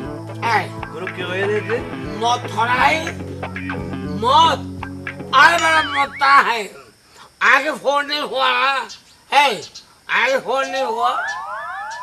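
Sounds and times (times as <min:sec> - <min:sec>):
man talking: 0:00.4 - 0:03.2, 0:04.1 - 0:04.7, 0:05.3 - 0:11.3.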